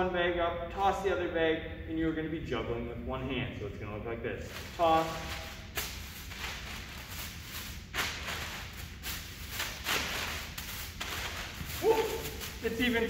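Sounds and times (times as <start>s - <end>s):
plastic bags rustling: 4.5s - 13.0s.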